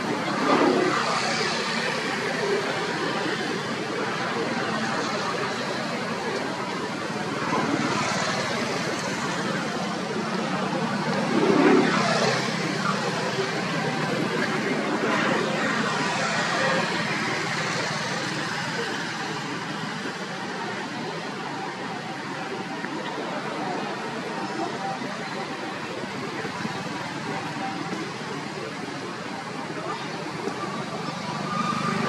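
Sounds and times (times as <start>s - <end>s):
road traffic: 0.0s - 32.0s.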